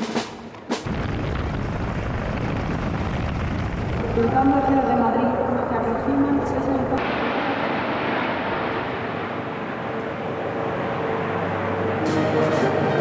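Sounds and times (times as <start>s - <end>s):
helicopters flying overhead: 4.0s - 13.0s.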